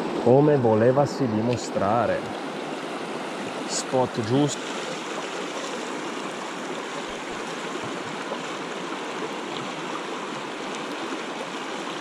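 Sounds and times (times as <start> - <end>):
flowing stream: 0.0 - 12.0.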